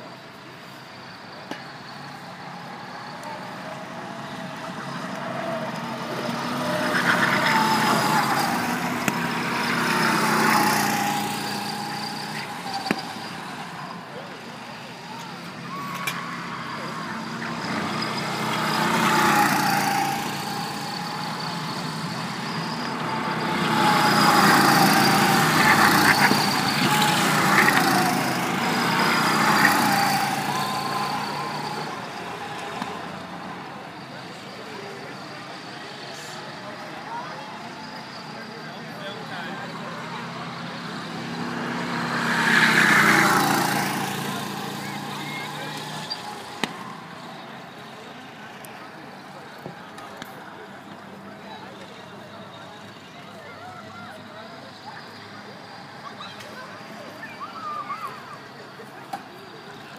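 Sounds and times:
go-kart engines passing: 0.0s - 59.9s.

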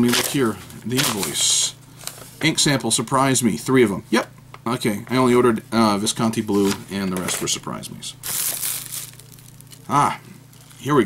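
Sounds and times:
plastic shrink wrap crinkling: 8.2s - 11.0s.

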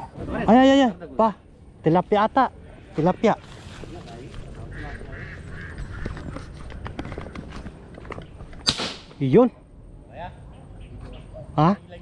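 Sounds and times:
footsteps through grass: 3.0s - 8.5s
camera handling rumble: 5.6s - 8.7s.

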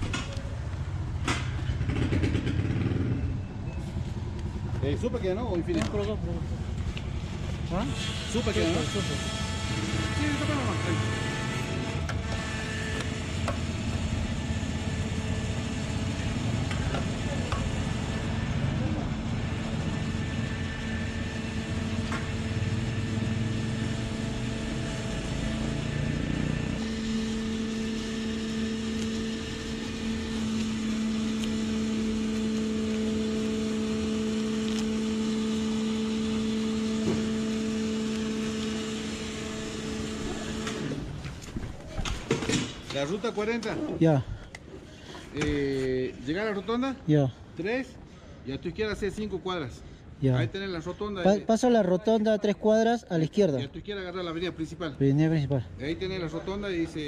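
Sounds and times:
steady motor hum: 3.5s - 48.4s.

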